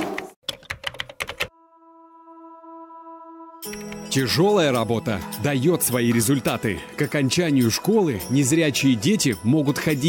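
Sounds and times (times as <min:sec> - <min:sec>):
keyboard typing clicks: 0:00.5 - 0:01.5, 0:03.6 - 0:04.1.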